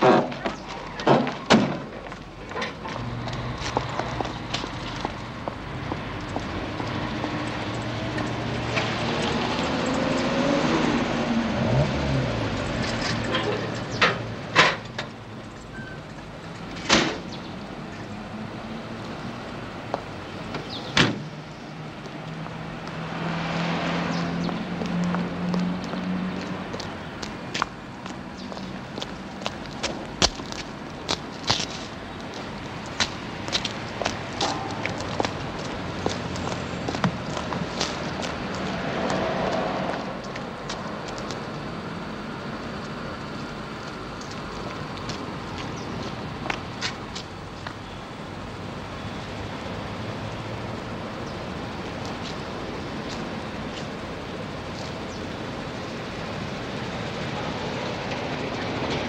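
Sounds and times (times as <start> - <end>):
car engine passing: 3.0 - 14.5, 20.4 - 29.5, 32.4 - 41.1.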